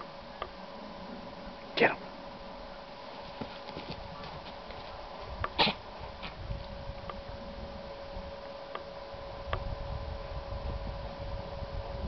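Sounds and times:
dogs scuffling while playing: 3.0 - 5.3.

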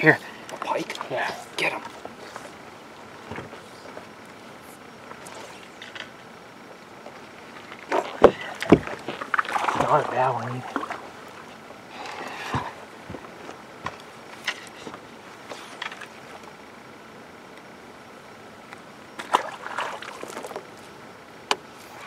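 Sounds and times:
steady background hiss: 0.0 - 22.0.

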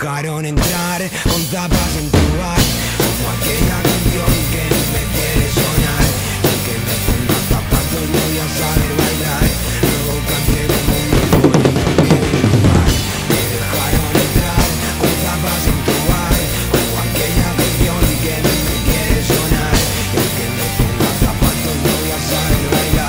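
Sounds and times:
pop-rock backing track: 0.5 - 23.0
acoustic drum kit playing: 0.6 - 23.0.

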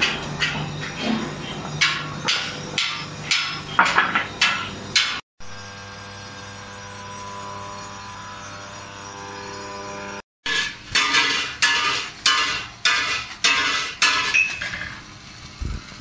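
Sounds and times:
hammer striking steel plate: 0.0 - 5.2, 10.5 - 14.9
steady hum with held tones: 0.0 - 10.2.

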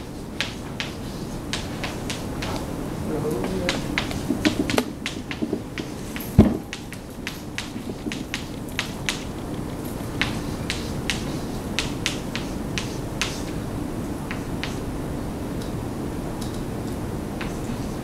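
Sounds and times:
chalk tapping on blackboard: 0.0 - 2.7, 3.3 - 13.6, 14.2 - 14.9, 17.4 - 18.0.

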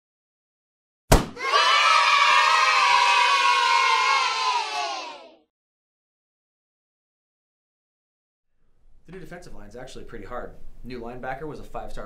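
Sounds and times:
balloon pop: 1.1 - 1.4
children shouting and cheering: 1.4 - 5.5.

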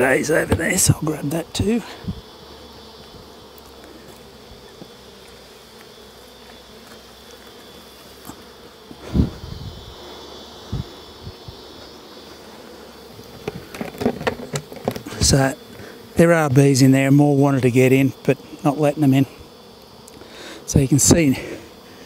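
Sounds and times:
bees humming: 0.0 - 22.0.

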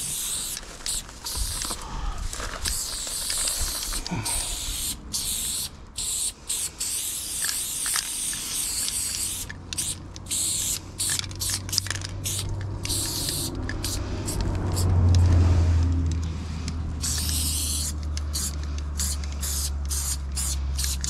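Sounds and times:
spray paint can hissing: 0.0 - 15.3, 17.0 - 21.0
low rumble: 12.0 - 17.1.

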